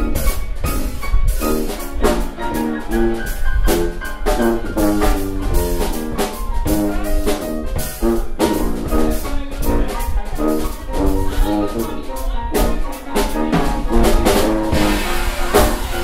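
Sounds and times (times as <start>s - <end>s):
sousaphone bass line: 0.0s - 12.8s
drums keeping a steady beat: 0.0s - 16.0s
piano chords: 0.0s - 16.0s.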